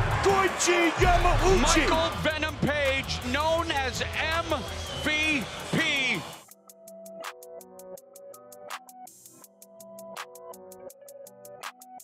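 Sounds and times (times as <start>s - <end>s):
music with steady low beat: 6.5s - 12.0s.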